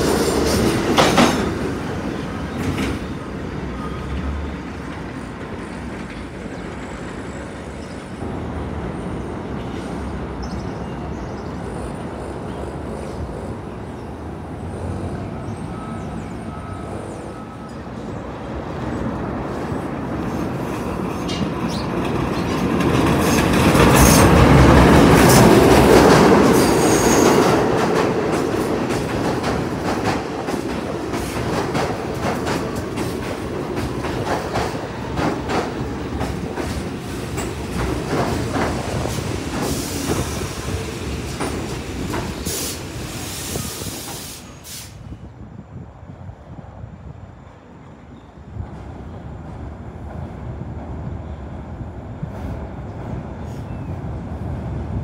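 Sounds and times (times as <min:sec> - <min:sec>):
subway train pulling in: 0:00.0 - 0:55.0.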